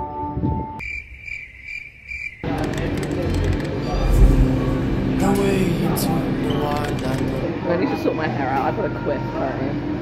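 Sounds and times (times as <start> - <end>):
crickets chirping: 0.8 - 2.6
background music: 2.6 - 7.9.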